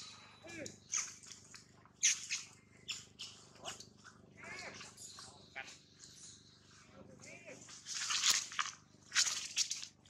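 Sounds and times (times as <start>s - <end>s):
monkey squeak: 0.0s - 1.3s, 2.0s - 3.8s
dry leaves crackling underfoot: 7.6s - 10.0s.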